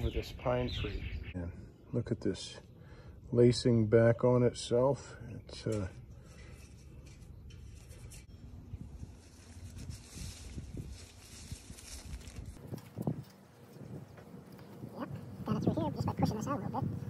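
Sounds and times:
vine leaves rustling: 0:06.2 - 0:17.0.

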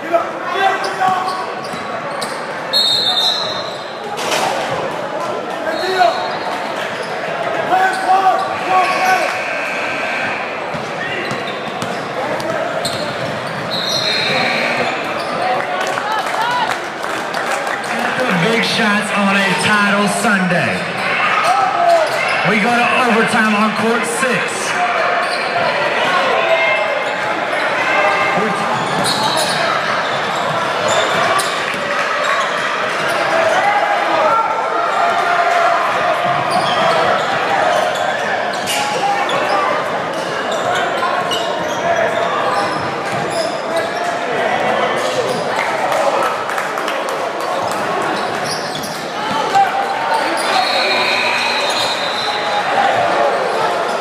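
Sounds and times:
din of voices: 0:17.9 - 0:21.5, 0:22.3 - 0:24.9.

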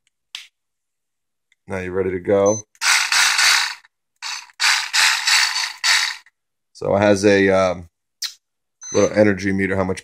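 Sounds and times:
reciprocating saw running: 0:02.8 - 0:06.3.

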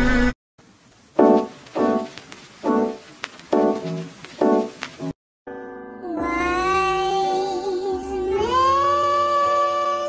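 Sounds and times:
person singing a long note: 0:06.0 - 0:10.0.

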